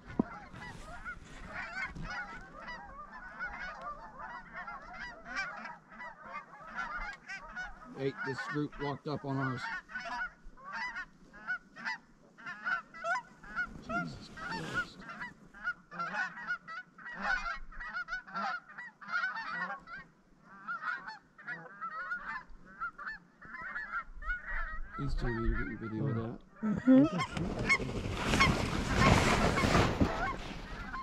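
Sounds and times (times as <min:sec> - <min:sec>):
geese honking: 0:00.0 - 0:31.0
brief rustle: 0:27.3 - 0:31.0.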